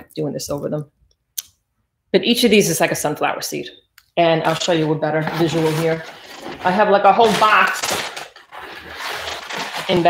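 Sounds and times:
hand rummaging through seeds: 5.3s - 10.0s.

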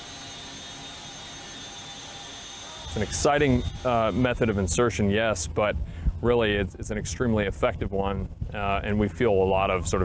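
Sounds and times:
thin high whine: 0.0s - 5.5s
aircraft turbine engine drone: 0.0s - 10.0s.

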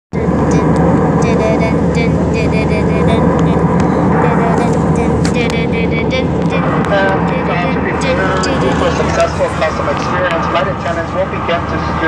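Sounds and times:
airliner cabin engine noise: 0.1s - 12.0s
person speaking: 0.2s - 11.2s.

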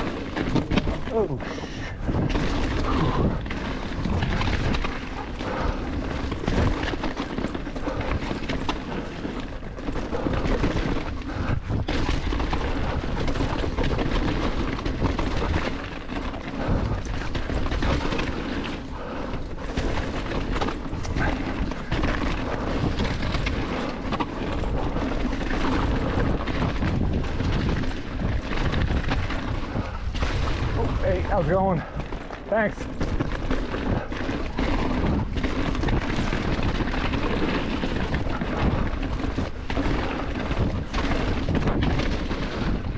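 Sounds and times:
bike frame and chain clattering: 0.0s - 42.9s
bike tyres rumbling on dirt: 0.0s - 42.9s
wind buffeting microphone: 0.0s - 42.9s.

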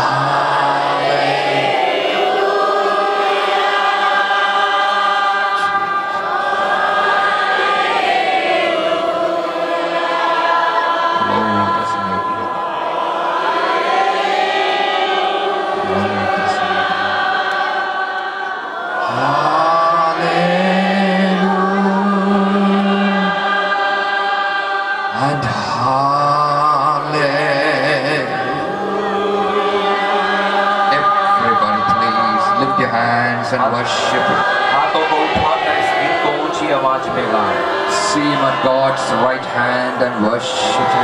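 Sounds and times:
congregation singing: 0.0s - 41.0s.

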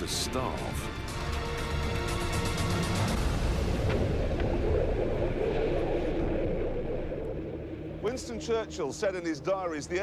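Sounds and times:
explosion rumble: 3.1s - 8.5s.

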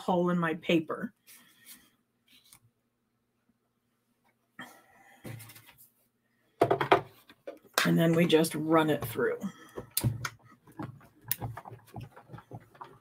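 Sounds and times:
plastic plates rustling and knocking: 6.6s - 8.4s, 9.0s - 13.0s.

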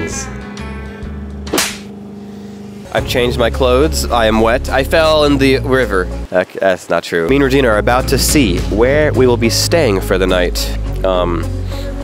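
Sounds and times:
background music: 0.0s - 6.3s, 7.3s - 12.0s.

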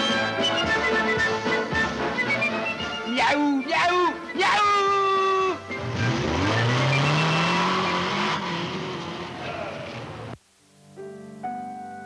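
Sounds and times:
motorcycle engine accelerating: 5.7s - 10.4s.

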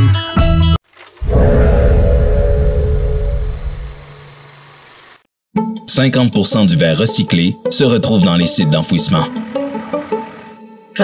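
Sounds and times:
deep logo sting with held tone: 1.2s - 4.5s.

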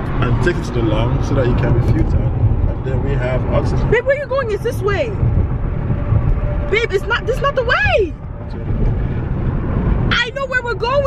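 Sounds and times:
car cabin road rumble: 0.0s - 11.0s.

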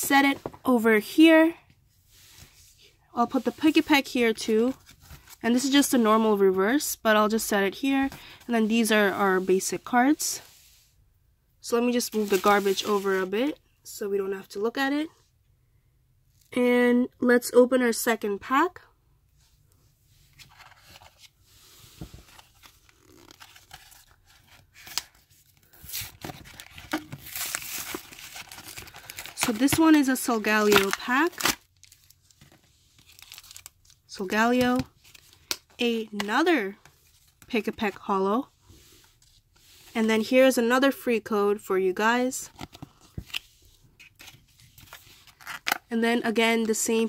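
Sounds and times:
blister pack tearing and crinkling: 25.8s - 29.8s, 30.6s - 32.2s, 33.0s - 34.0s.

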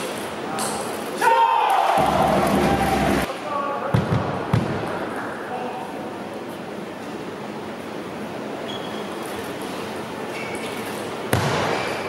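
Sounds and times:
voices in a hall: 0.0s - 11.3s.

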